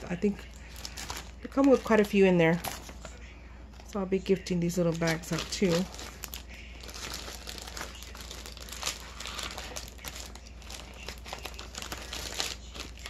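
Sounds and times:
packaging crinkling: 0.5 - 3.1, 4.9 - 13.0.

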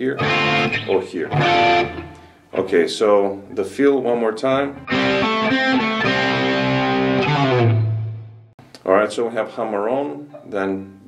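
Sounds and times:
overdriven electric guitar blues: 0.0 - 2.4, 4.8 - 8.5.

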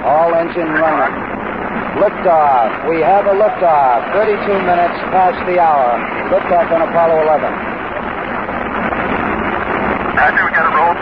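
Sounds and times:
rocket launch roar: 0.0 - 11.0.

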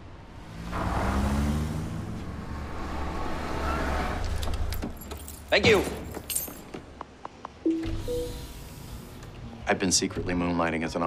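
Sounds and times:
car engine and tyre noise: 0.0 - 5.4.

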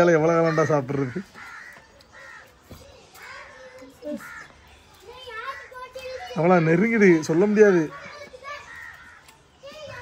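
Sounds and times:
crows cawing: 0.0 - 6.4, 7.9 - 10.0.

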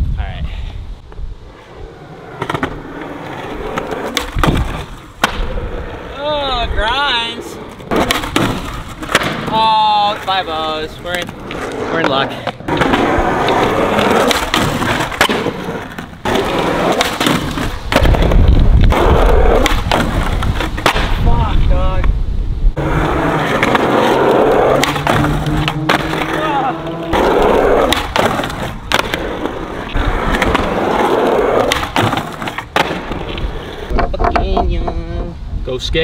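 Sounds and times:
skateboard wheels rolling on concrete: 0.0 - 36.0
skateboard trucks grinding ledge: 1.5 - 21.2, 22.8 - 35.3
skateboard landings: 1.6 - 6.2, 7.2 - 10.2, 11.1 - 21.2, 22.8 - 35.0
skateboard pops: 3.7 - 5.6, 7.7 - 9.6, 11.1 - 21.3, 24.7 - 26.4, 27.1 - 30.8, 31.5 - 34.4.

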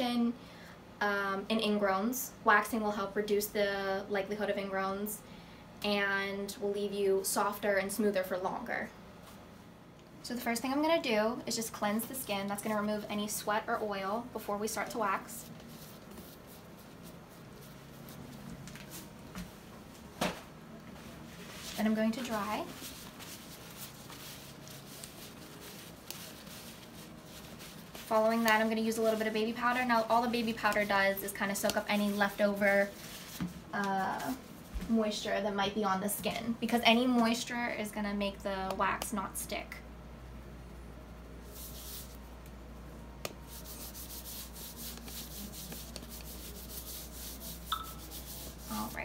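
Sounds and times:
low room hiss: 0.0 - 49.0
paper towel rustling on skin: 15.1 - 35.0, 41.4 - 42.3, 43.4 - 49.0.

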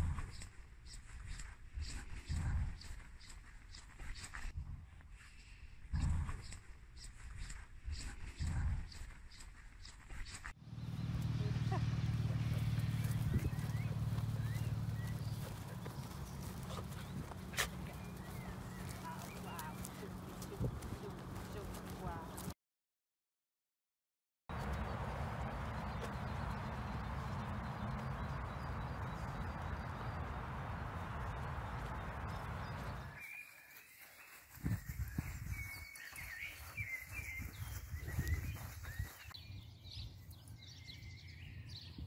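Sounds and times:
wind rumbling on microphone: 1.2 - 3.0, 4.3 - 5.2, 5.8 - 9.1, 12.1 - 22.5, 24.5 - 33.2, 34.5 - 42.0
small birds chirping: 5.3 - 22.5, 24.5 - 42.0
soft footsteps on grass: 10.6 - 22.5, 24.5 - 41.0
low steady rumble: 10.7 - 22.4
faint bird chirps: 31.4 - 42.0.

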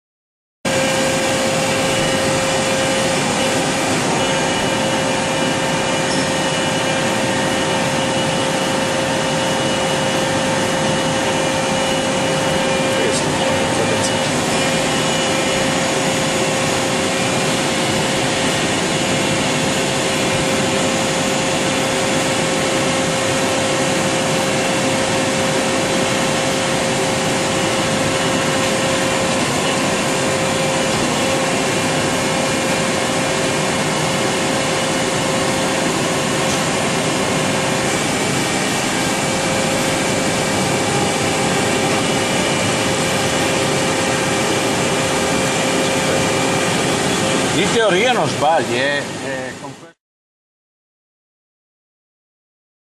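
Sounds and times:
lathe whirring: 0.7 - 49.7.

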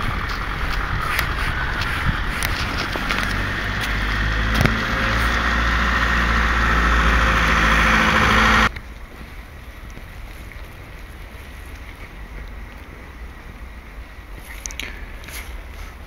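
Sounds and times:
motor engine running: 0.0 - 8.7.

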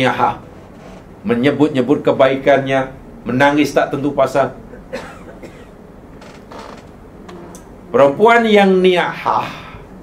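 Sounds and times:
faint creak: 0.5 - 1.1, 6.1 - 7.7
man speaking: 1.3 - 4.6, 7.9 - 9.8.

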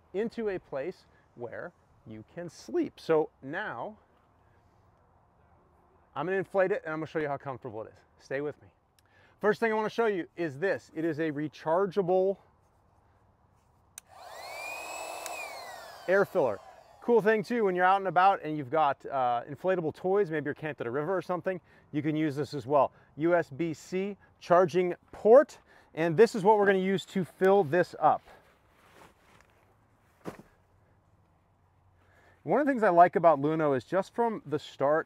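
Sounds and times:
electric air pump whining: 14.0 - 17.2.

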